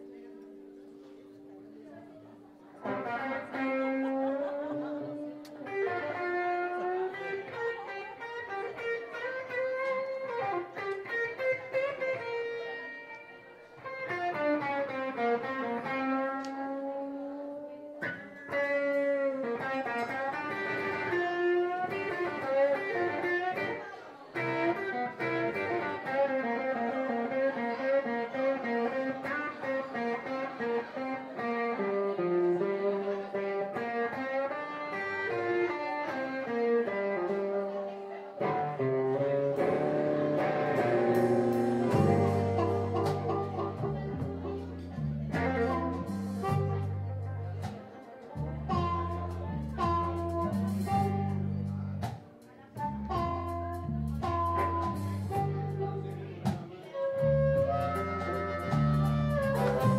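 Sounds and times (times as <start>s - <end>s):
electric guitar melody notes: 0.0s - 59.9s
live band playing: 2.8s - 12.6s, 18.0s - 37.7s, 38.4s - 59.9s.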